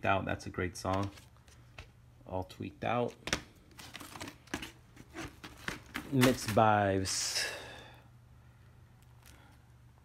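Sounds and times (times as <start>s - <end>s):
record sleeves tapping together: 0.8s - 2.0s, 3.0s - 6.8s.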